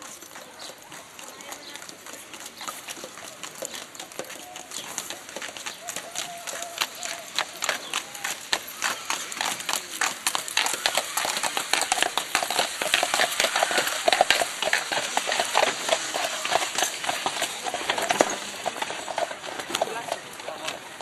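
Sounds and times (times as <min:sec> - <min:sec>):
horse hooves on gravel: 0:00.0 - 0:21.0.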